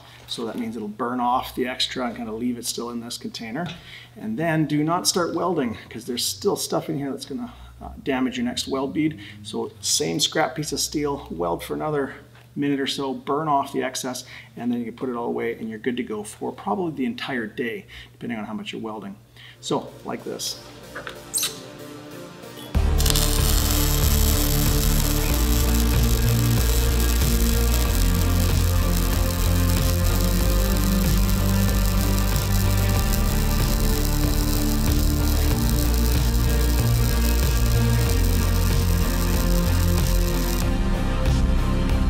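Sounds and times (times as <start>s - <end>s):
background music: 19.5s - 42.0s.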